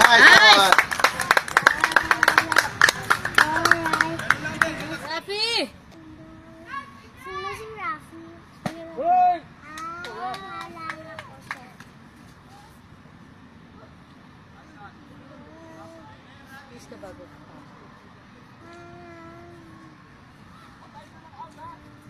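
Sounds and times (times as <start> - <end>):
children shouting and cheering: 0.0 - 4.5, 9.6 - 11.2
fast clapping: 0.0 - 5.2.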